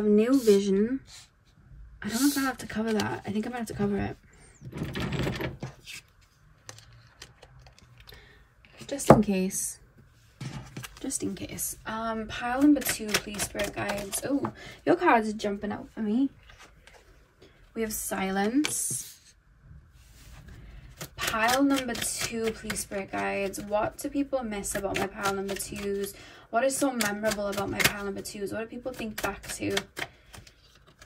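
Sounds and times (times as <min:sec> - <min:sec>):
cards rustling: 0:02.1 - 0:03.9, 0:10.6 - 0:11.2, 0:24.6 - 0:26.1, 0:29.0 - 0:31.0
cards tapping and clicking: 0:12.6 - 0:14.6, 0:26.8 - 0:28.1, 0:28.9 - 0:31.0.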